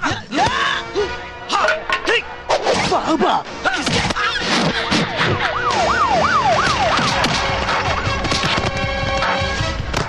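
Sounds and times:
police siren yelp: 5.0 - 8.2.

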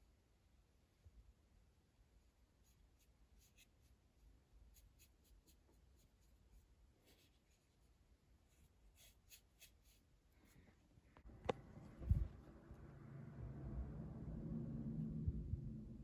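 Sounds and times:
paintbrush scratching on wood: 8.5 - 10.2.

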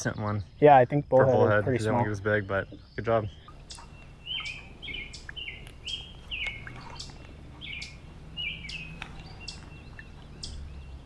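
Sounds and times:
bird two-part call: 3.4 - 10.6.

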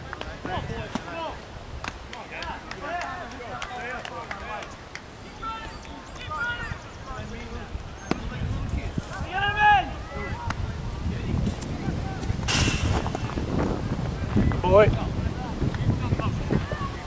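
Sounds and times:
people talking and calling: 0.0 - 17.0.

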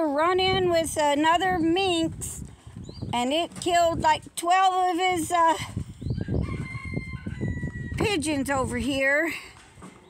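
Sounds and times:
wind rumble on microphone: 0.0 - 9.9
rooster crowing in the distance: 6.2 - 8.0.

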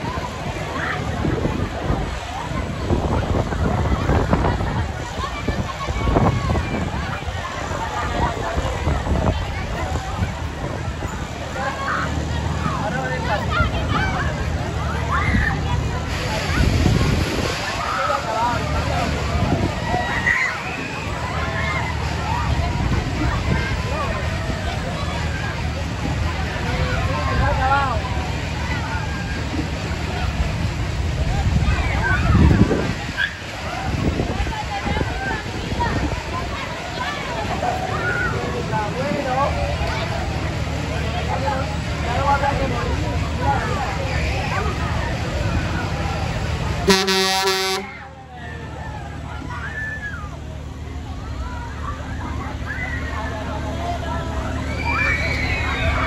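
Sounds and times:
ride low rumble: 0.0 - 56.0
voices of riders and onlookers: 0.0 - 56.0
loud horn blast: 46.8 - 48.0
riders screaming: 54.4 - 56.0.

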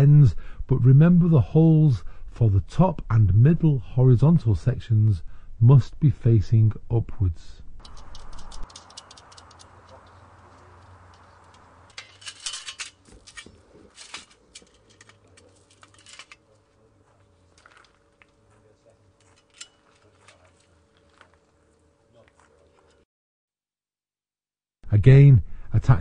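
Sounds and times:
metal staging parts clicking: 7.8 - 16.5, 19.2 - 20.6.

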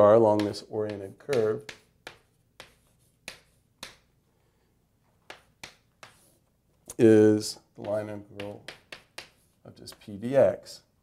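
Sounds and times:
marker tapping on board: 0.3 - 4.1, 5.2 - 6.3, 7.8 - 10.2.

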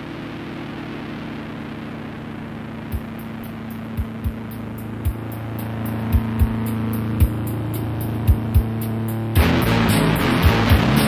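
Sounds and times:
low drone of held tones: 0.0 - 11.0
tape hiss: 0.0 - 11.0.

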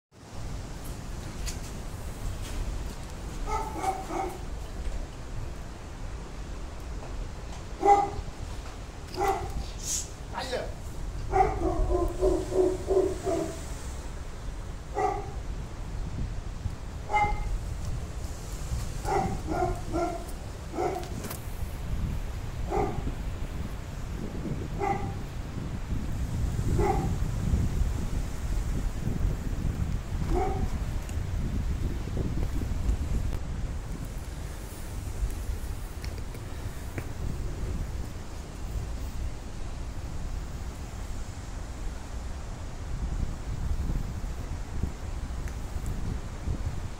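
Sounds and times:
dog barking: 3.5 - 4.4, 7.8 - 8.3, 9.2 - 9.6, 11.3 - 13.6, 14.9 - 15.4, 17.1 - 17.5, 19.0 - 21.2, 22.7 - 23.1, 24.8 - 25.2, 26.8 - 27.2, 30.3 - 30.7.

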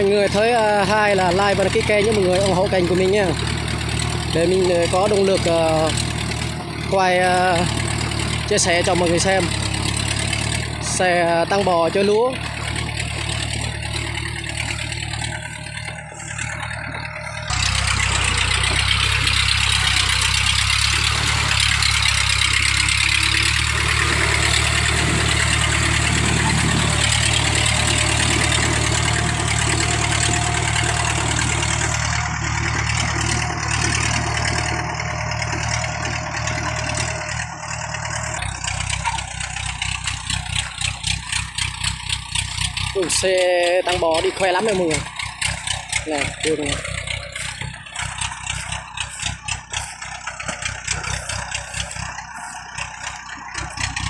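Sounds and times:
crawler engine running: 0.0 - 54.0.

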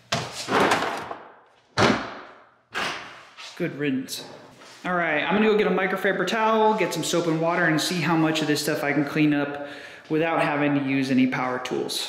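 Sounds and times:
plastic strips thudding into bin: 0.4 - 1.2.

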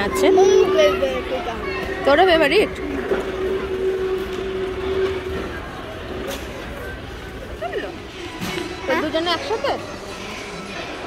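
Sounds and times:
low rumble: 0.0 - 7.6
steady hum-like tone: 0.0 - 9.6.

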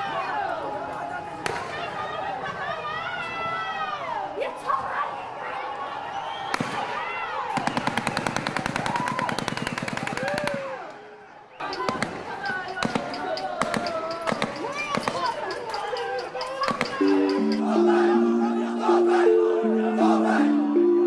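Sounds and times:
crowd shouting and screaming: 0.0 - 8.0, 10.1 - 21.0
rapid gunfire cracks: 7.5 - 10.7, 11.8 - 15.5.

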